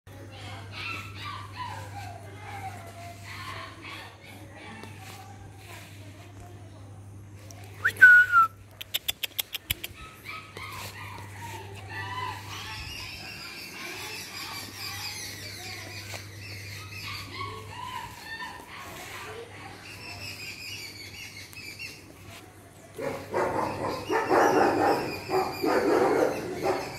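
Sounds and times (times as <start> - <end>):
puppies barking: 0.3 - 5.5, 9.8 - 26.9
person whistling: 7.8 - 8.5.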